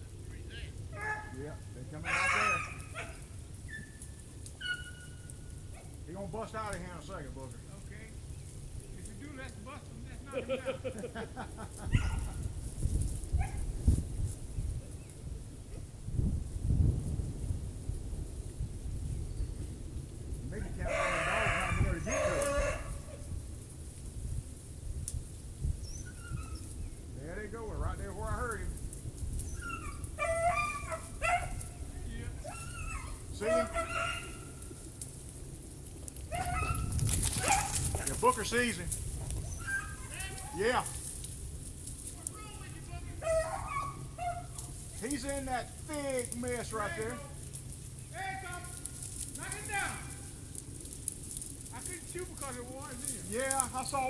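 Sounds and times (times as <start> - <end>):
dogs baying: 0.9 - 1.4, 2.0 - 6.1, 11.8 - 12.5, 20.8 - 23.3, 29.4 - 34.9, 36.2 - 38.1, 39.4 - 40.6, 43.2 - 45.0.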